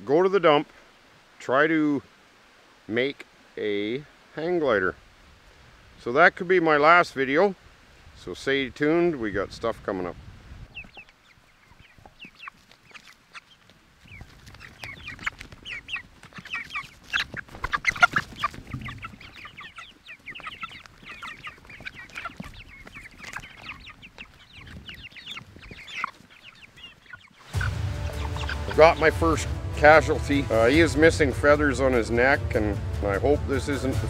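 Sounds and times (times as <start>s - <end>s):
chicks clucking and peeping: 8.2s - 34.0s
music: 27.5s - 34.0s
man speaking: 28.5s - 34.0s.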